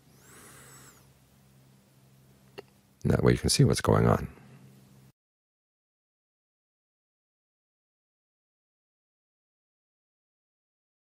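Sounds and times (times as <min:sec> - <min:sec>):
low steady hum: 0:00.0 - 0:05.2.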